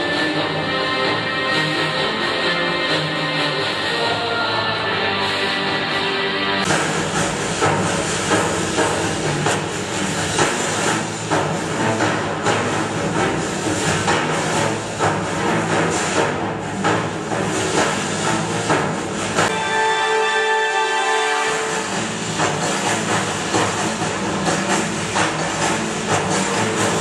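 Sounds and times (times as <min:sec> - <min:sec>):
hissing music with drum strikes: 0:00.0 - 0:27.0
tonal melody: 0:19.5 - 0:24.2.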